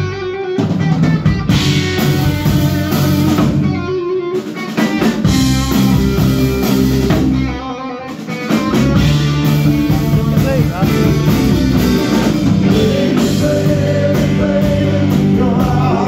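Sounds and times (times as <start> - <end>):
bass guitar: 0.0 - 16.0
drum kit: 0.0 - 16.0
electric guitars: 0.0 - 16.0.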